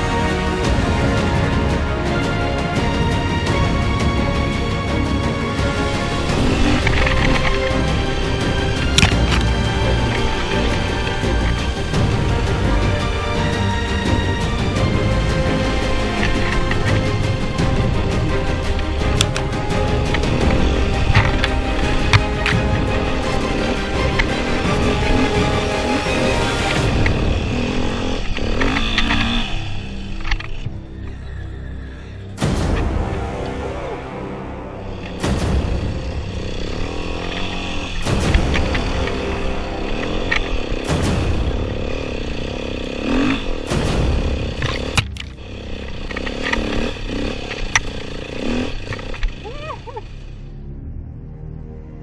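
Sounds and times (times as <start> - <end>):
dirt bike engine revving: 0.0 - 50.4
background music: 0.0 - 52.0.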